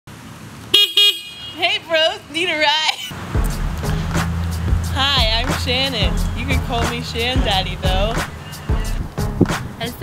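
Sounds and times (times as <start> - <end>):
scooter horn beeps: 0.8 - 1.8.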